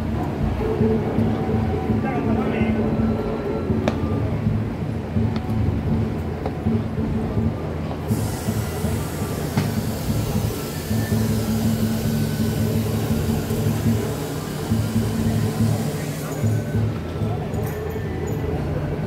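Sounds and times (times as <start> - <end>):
rushing hiss: 8.1 - 16.9.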